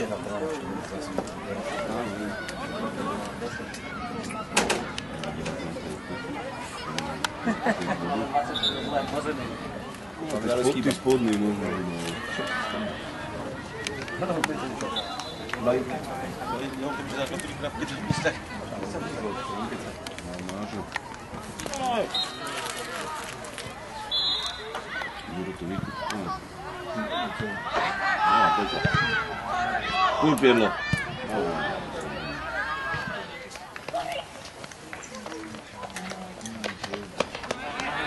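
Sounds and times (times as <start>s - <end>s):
people shouting and calling out: 0.0s - 20.0s, 21.1s - 36.5s, 37.2s - 38.0s.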